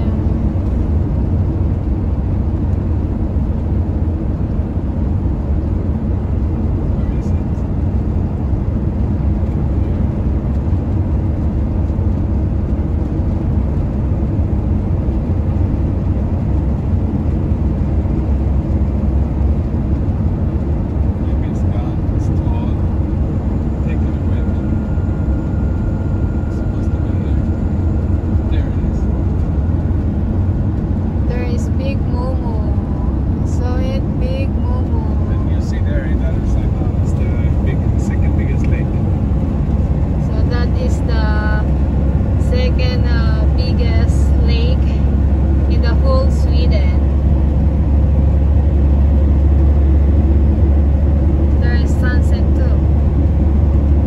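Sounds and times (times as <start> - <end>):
road and engine rumble in car: 0.0 - 54.0.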